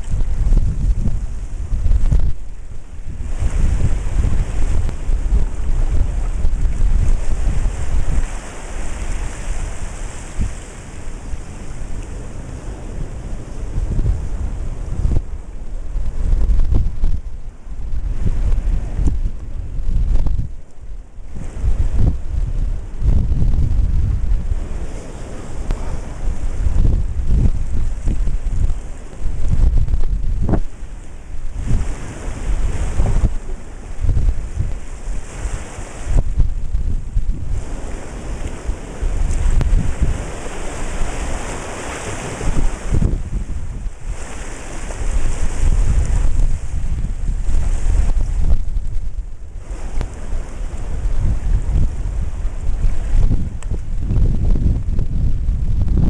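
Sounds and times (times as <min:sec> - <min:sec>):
ocean surf in tide pool: 0:00.0 - 0:56.0
wind buffeting microphone: 0:00.0 - 0:56.0.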